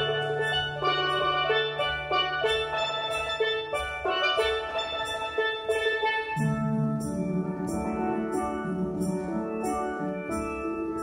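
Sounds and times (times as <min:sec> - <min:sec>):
cymbal strokes: 0:00.0 - 0:11.0
steel pans playing: 0:00.0 - 0:11.0.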